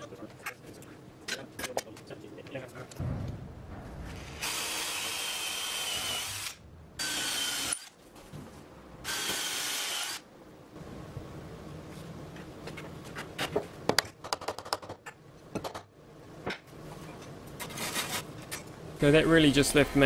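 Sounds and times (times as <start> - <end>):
cordless drill boring into wood: 4.4 - 7.9, 9.1 - 10.2.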